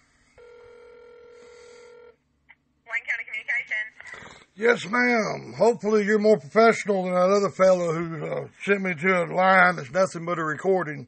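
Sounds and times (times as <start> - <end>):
telephone ringback tone: 0.4 - 2.2
woman answering phone: 2.9 - 4.2.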